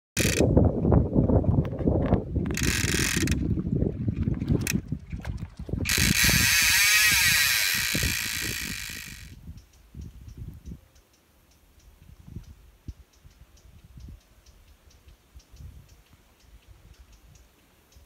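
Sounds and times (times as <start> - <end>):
fly reel ratchet clicking: 0.2 - 0.4, 2.5 - 3.4, 5.9 - 9.8.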